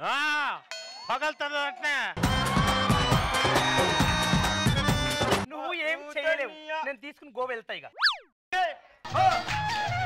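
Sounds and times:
cartoon slide whistle effect: 0:08.0 - 0:08.3.

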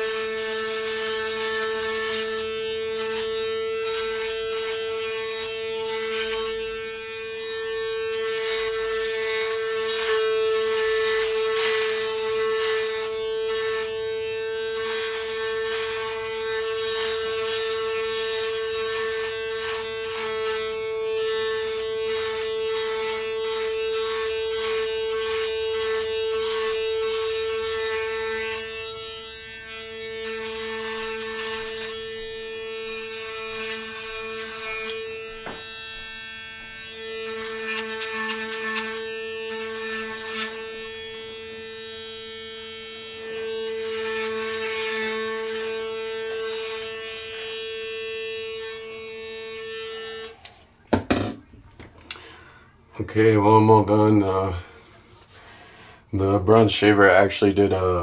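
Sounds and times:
shaver crackling over stubble: 0:00.0 - 0:50.6
electric shaver buzzing: 0:00.0 - 0:52.6.

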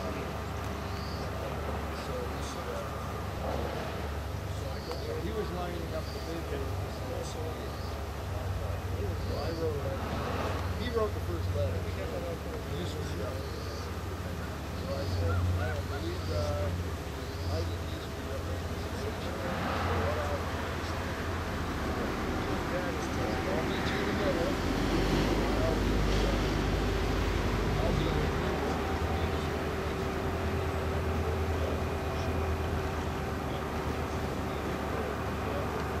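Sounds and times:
faint steady tone: 0:00.0 - 0:24.6
indistinct voices talking: 0:00.0 - 0:36.0.

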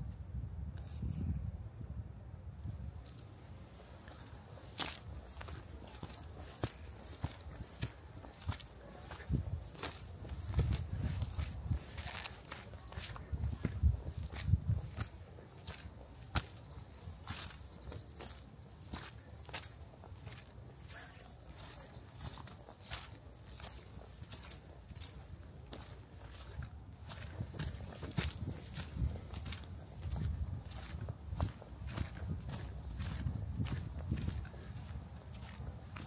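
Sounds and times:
footsteps on dry leaves: 0:03.1 - 0:36.0.

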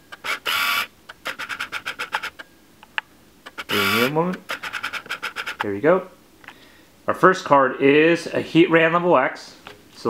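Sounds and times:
sharp click: 0:01.1 - 0:05.7.

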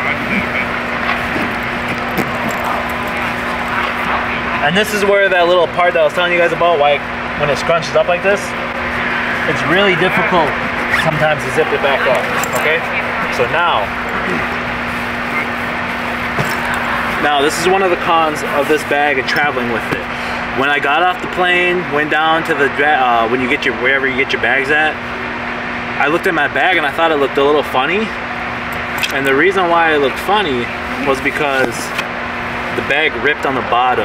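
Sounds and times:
steady background hum: 0:00.0 - 0:34.0
bag zipper pulled: 0:10.9 - 0:11.3.

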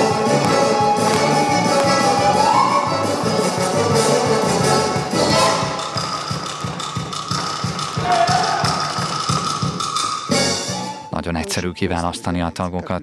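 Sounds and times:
folk dance music: 0:00.0 - 0:11.1.

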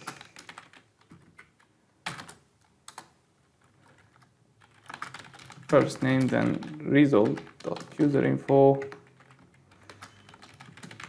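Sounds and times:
computer keyboard keystrokes: 0:00.0 - 0:11.0.

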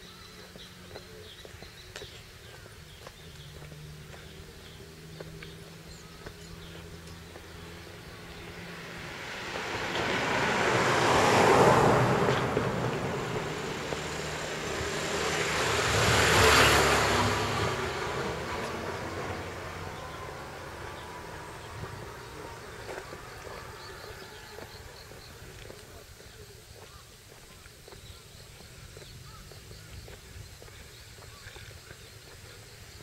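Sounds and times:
vehicles passing close by: 0:00.0 - 0:33.0.

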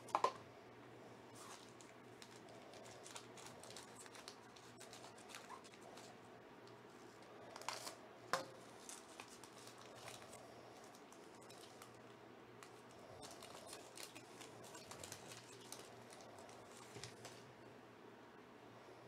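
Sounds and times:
foil wrapper crinkling: 0:01.3 - 0:06.2, 0:07.2 - 0:08.0, 0:08.6 - 0:17.4.

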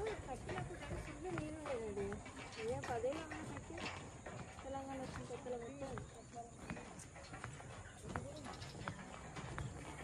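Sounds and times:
light footsteps: 0:00.0 - 0:10.0.

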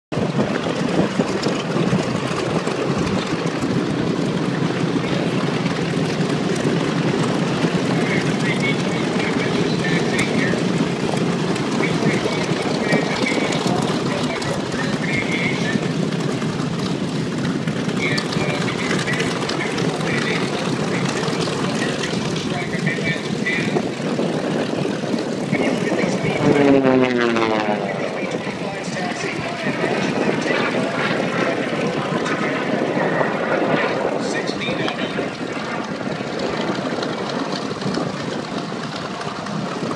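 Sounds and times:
propeller aircraft engines droning: 0:00.1 - 0:39.9
faint voices talking: 0:04.2 - 0:39.9.

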